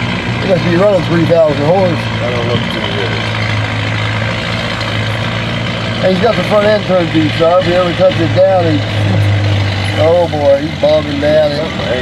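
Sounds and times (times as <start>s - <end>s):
tractor engine running under load: 0.0s - 12.0s.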